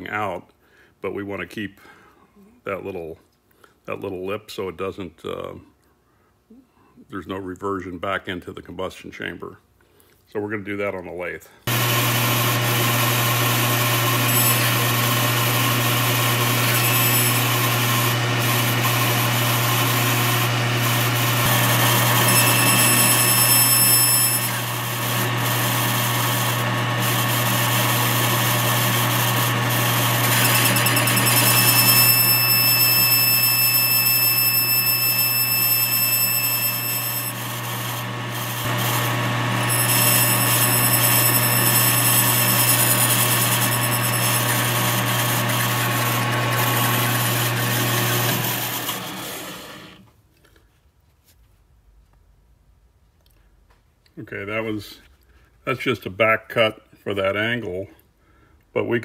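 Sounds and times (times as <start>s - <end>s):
metal lathe cutting: 11.7s - 50.0s
high-pitched ringing: 21.9s - 24.6s, 30.5s - 37.8s.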